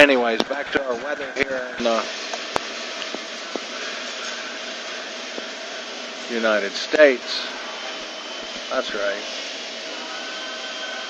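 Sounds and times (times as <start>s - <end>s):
fan-like hiss: 0.0s - 11.0s.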